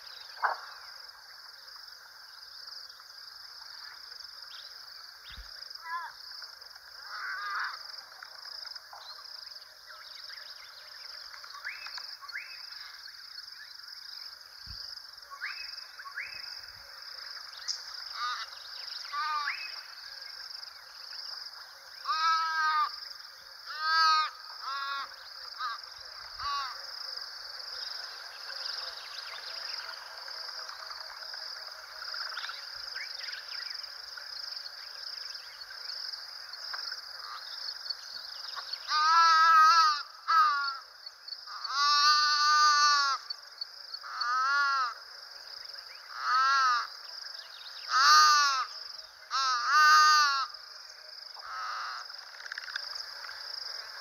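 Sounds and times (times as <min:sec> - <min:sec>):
high insect drone: 0:00.0 - 0:54.0.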